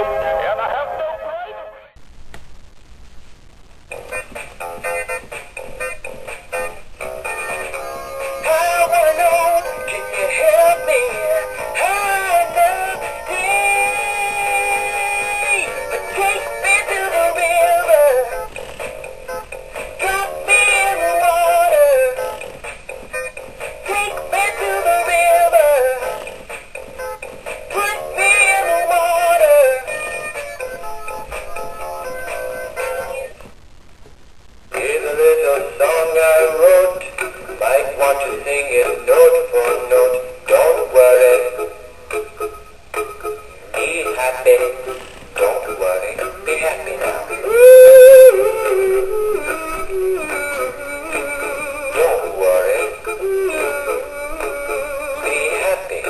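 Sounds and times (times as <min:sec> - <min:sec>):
singing toy fish speaker: 0:07.2 - 0:18.6, 0:19.3 - 0:22.5, 0:23.1 - 0:26.3, 0:27.0 - 0:33.3, 0:34.7 - 0:56.0.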